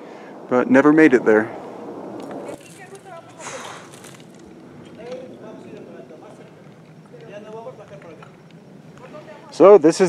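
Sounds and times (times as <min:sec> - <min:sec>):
distant voices talking: 0:00.0 - 0:10.0
brief rustle: 0:02.2 - 0:07.4.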